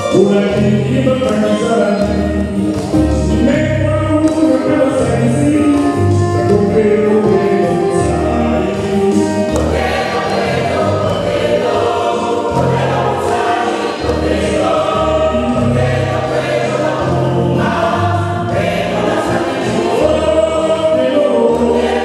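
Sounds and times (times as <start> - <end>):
choir singing gospel: 0.0 - 22.0.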